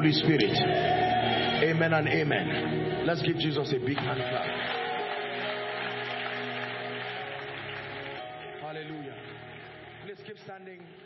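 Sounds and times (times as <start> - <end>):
congregation clapping: 3.9 - 11.0.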